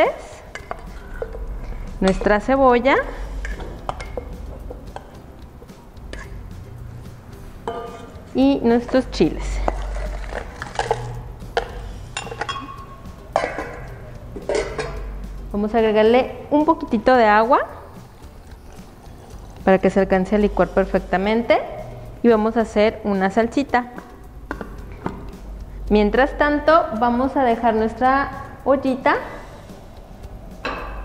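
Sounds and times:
steel bowls knocking and clinking: 0.4s - 2.6s, 3.4s - 15.2s, 23.9s - 25.3s, 30.6s - 31.0s
bowl ringing: 10.7s - 15.1s.

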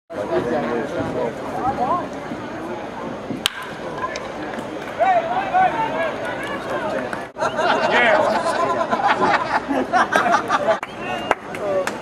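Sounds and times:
crowd chatter: 0.1s - 12.0s
bat cracking against baseball: 3.3s - 5.0s
voices shouting: 3.8s - 7.7s.

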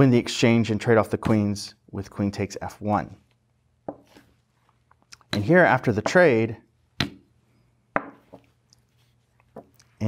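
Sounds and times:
wooden chess pieces knocking: 3.8s - 4.2s, 5.2s - 6.3s, 7.9s - 8.5s, 9.5s - 9.8s.

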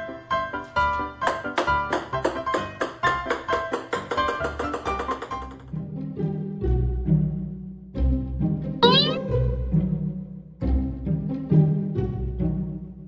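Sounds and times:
plucked-sounding background music: 0.4s - 13.0s.

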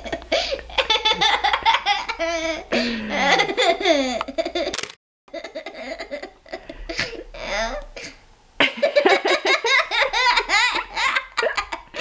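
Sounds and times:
child laughing and giggling: 0.0s - 7.8s, 8.9s - 12.0s.

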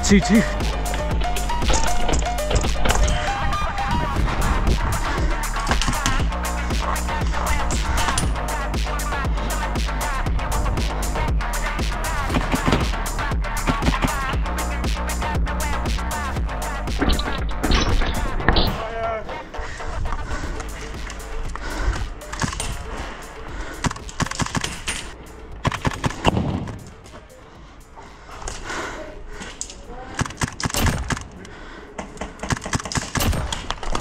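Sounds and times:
electronic background music: 0.0s - 31.4s
airsoft gunshots: 30.2s - 31.3s.

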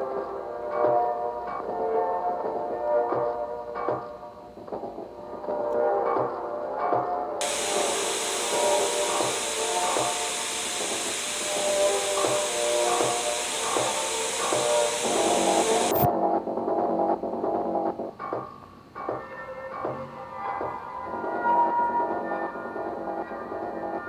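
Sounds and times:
television static hiss: 7.4s - 16.1s.

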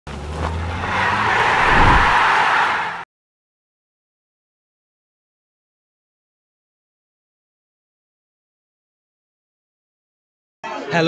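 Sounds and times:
rushing whoosh: 1.4s - 2.4s
low rumble: 1.6s - 2.2s.

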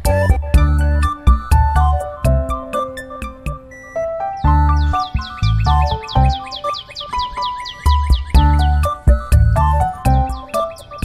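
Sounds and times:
music with heavy bass: 0.0s - 6.6s, 7.9s - 11.0s
high falling chirps: 0.7s - 11.0s.

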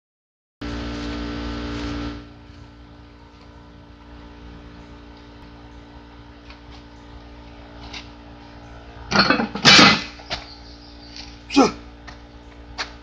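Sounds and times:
steady low hum: 0.6s - 13.0s
footsteps on gravel: 10.3s - 13.0s.

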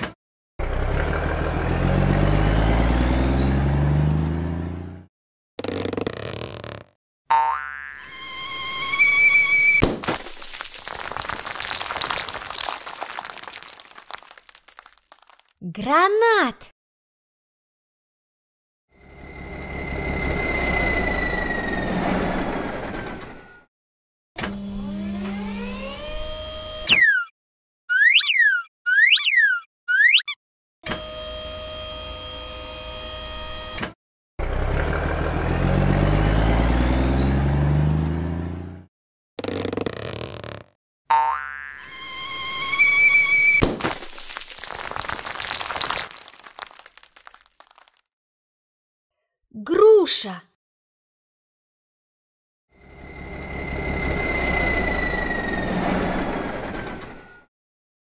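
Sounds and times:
cartoon truck engine rumble: 0.6s - 7.0s, 19.0s - 23.6s, 34.4s - 40.7s, 52.9s - 57.4s
cartoon falling whistle: 26.9s - 27.3s, 27.9s - 30.4s
scattering clatter: 43.8s - 47.9s.

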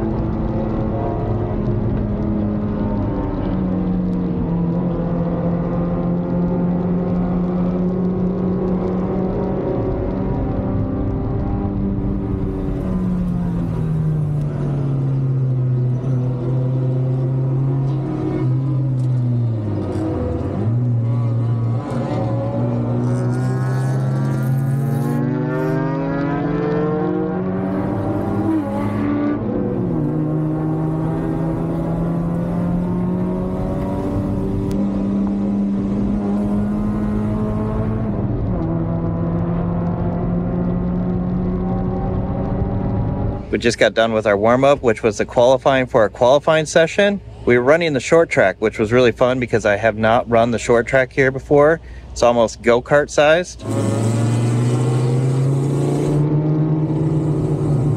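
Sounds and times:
car engine revving: 0.0s - 45.8s, 53.1s - 57.9s.

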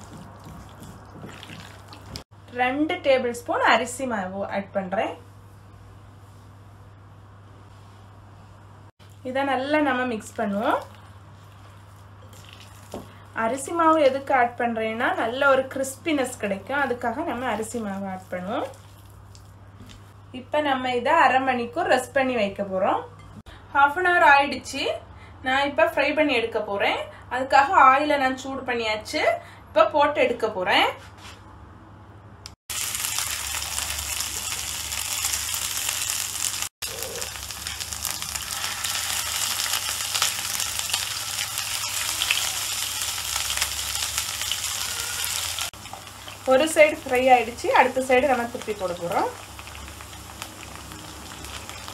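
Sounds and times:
woman speaking: 2.5s - 5.2s, 46.5s - 49.4s
chicken frying in hot oil: 32.7s - 51.9s.

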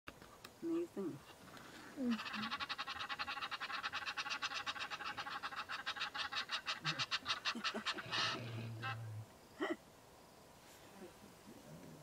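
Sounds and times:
frogs calling: 0.6s - 9.8s.

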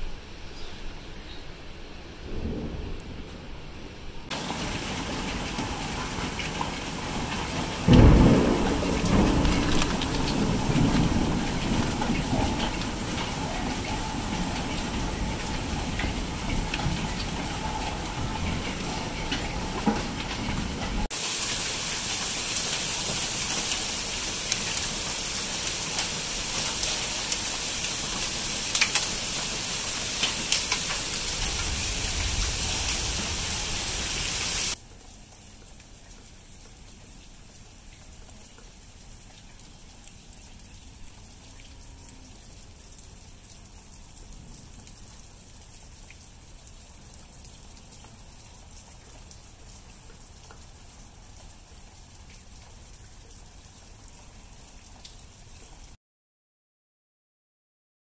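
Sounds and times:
heavy rain: 1.7s - 56.0s
thunderclap rumbling: 2.2s - 21.1s, 30.5s - 34.8s
hail hitting: 4.3s - 34.8s.

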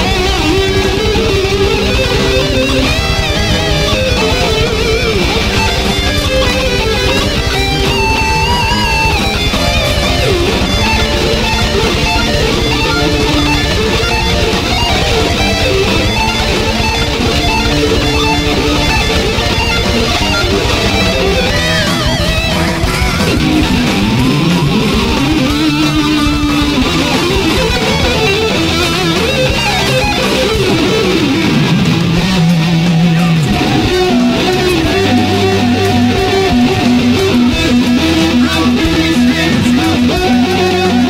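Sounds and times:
distorted electric guitar riffs: 0.0s - 41.0s
high guitar notes with vibrato: 0.0s - 41.0s.

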